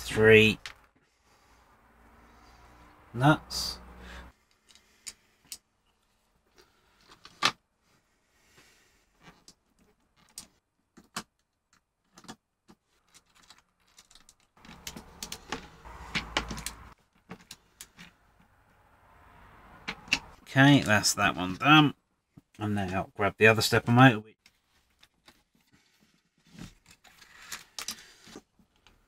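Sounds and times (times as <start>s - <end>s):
handling noise: 9.2s - 18.6s.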